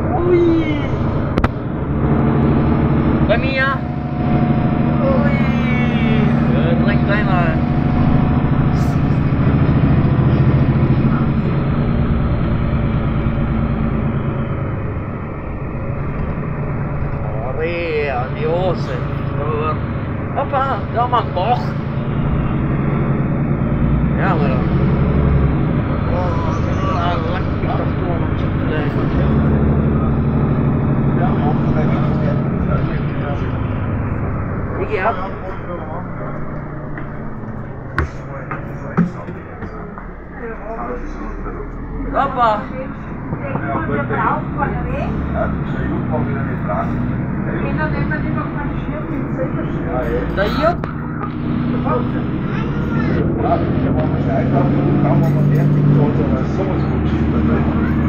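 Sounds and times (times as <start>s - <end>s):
bus engine humming: 0.0s - 58.0s
passengers' voices: 24.1s - 58.0s.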